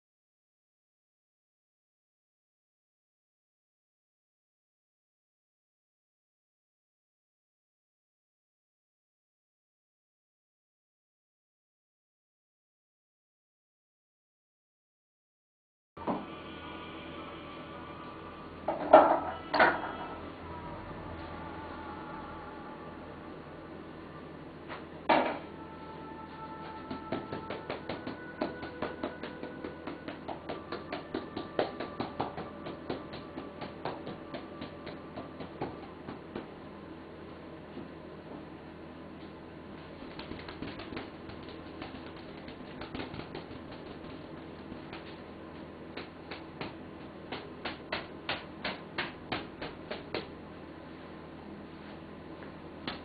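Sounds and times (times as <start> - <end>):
low room hum: 16.0 - 53.0.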